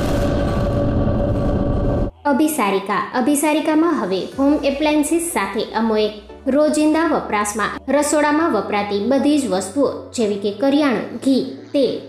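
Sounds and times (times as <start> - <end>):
heavy low rumble: 0.0 - 2.1.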